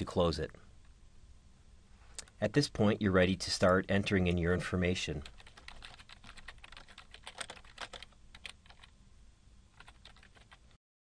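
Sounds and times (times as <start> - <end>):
computer keyboard typing: 5.2 - 8.9, 9.8 - 10.7.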